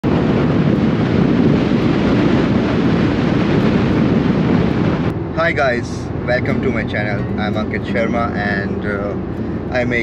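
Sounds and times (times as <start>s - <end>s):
car road and wind noise: 0.0s - 10.0s
wind buffeting microphone: 0.0s - 10.0s.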